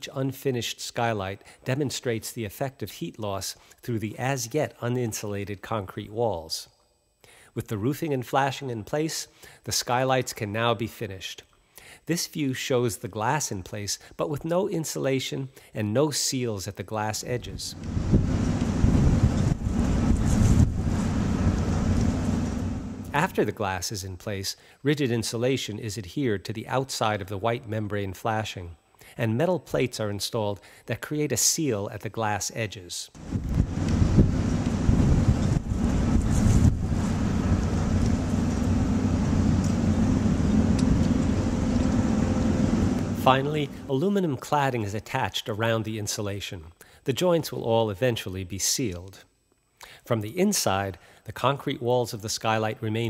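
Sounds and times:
wind buffeting microphone: 17.7s - 22.6s, 33.2s - 43.0s
construction site rumble: 17.7s - 23.4s, 33.2s - 44.0s.

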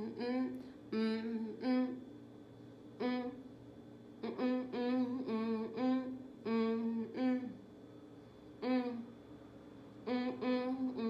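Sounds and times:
woman humming a slow melody: 0.0s - 2.1s, 3.0s - 3.4s, 4.2s - 7.6s, 8.6s - 9.2s, 10.0s - 11.0s.

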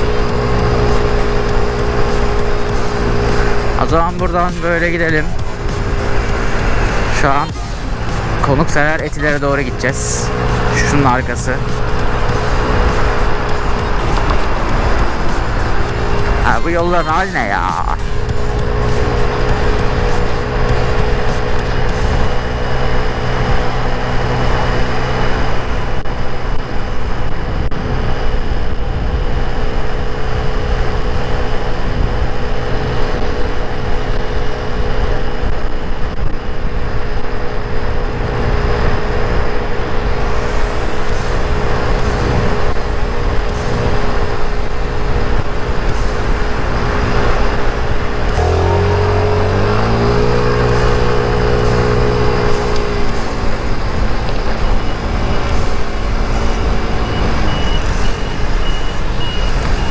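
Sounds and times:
scooter engine droning: 0.0s - 59.9s
wind and road noise: 0.0s - 59.9s.

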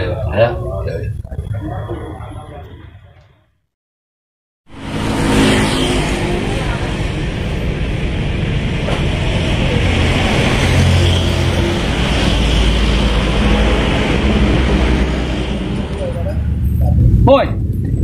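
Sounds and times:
deep traffic rumble: 0.0s - 3.3s, 4.7s - 18.0s
cars passing on road: 4.7s - 18.0s.

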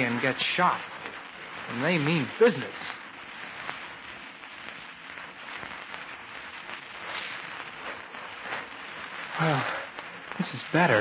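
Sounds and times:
record surface crackle and hiss: 0.0s - 11.0s.

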